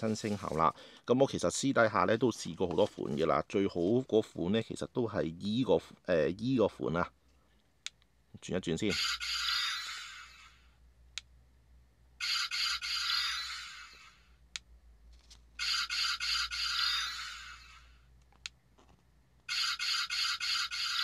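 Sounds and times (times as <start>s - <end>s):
rapidly pulsing electronic sound effect: 8.9s - 10.6s, 15.6s - 17.9s, 19.5s - 21.0s.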